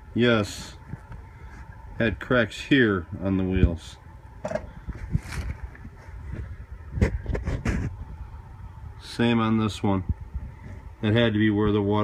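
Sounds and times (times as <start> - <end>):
rubber tire rustling in hands: 4.5 - 8.0.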